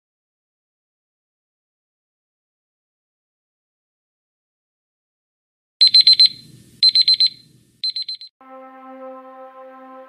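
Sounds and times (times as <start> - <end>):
timer alarm beeping: 5.8 - 8.3.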